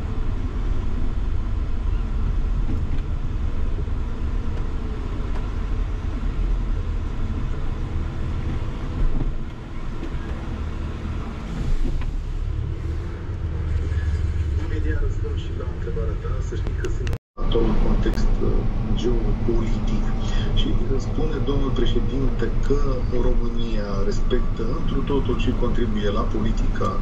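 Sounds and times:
minibus engine and road noise: 0.0s - 27.0s.

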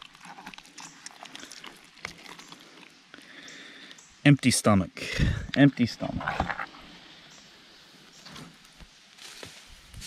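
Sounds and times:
wet squishing of fish flesh: 0.0s - 2.9s.

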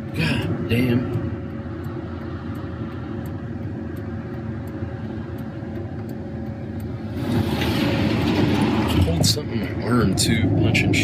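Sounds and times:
faint steady hum: 0.0s - 8.6s
car rumble inside cabin: 0.0s - 11.0s.

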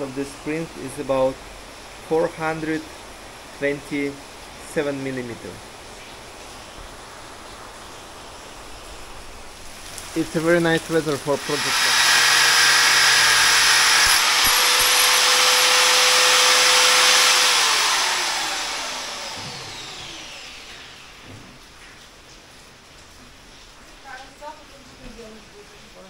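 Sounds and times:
angle grinder cutting steel: 10.8s - 21.2s
grinder disc spinning down: 10.8s - 21.2s.

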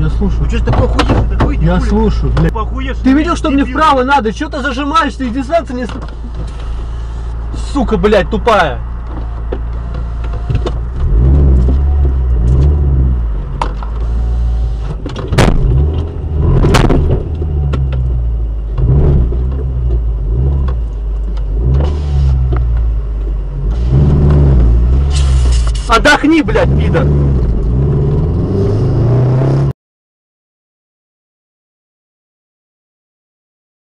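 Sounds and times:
car engine revving: 6.2s - 29.7s
sharp knocks: 15.3s - 17.3s.

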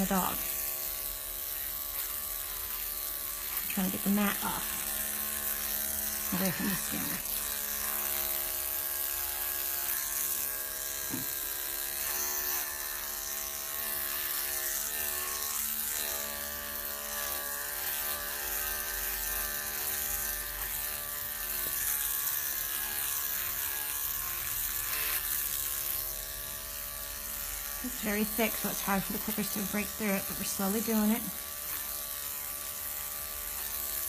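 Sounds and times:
electric clippers humming: 0.0s - 34.0s.

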